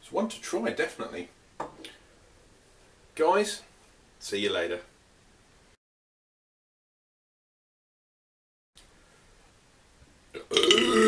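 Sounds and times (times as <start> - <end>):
man belching loudly: 10.4 - 11.0.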